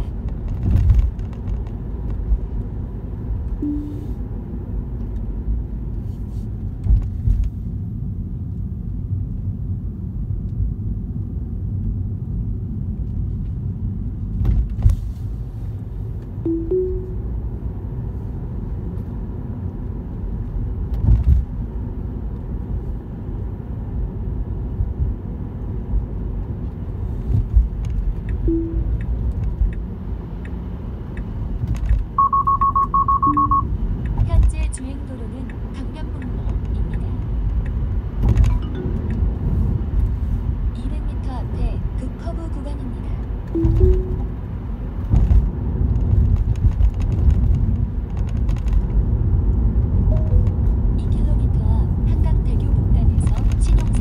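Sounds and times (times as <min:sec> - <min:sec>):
tyre and road rumble: 0:00.0 - 0:03.5, 0:43.0 - 0:54.0
rapid high beeps: 0:03.6 - 0:04.1, 0:32.2 - 0:33.7, 0:50.1 - 0:50.4
soft chime tones: 0:03.6 - 0:04.2, 0:16.5 - 0:17.3, 0:28.5 - 0:29.0.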